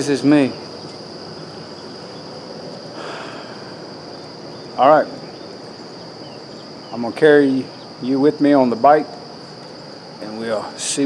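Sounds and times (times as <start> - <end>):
crickets singing: 0.0 - 11.0
low outdoor rustle: 0.0 - 11.0.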